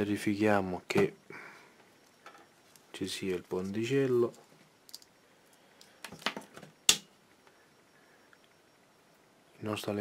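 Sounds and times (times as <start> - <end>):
wires clicking and rattling: 3.6 - 6.7.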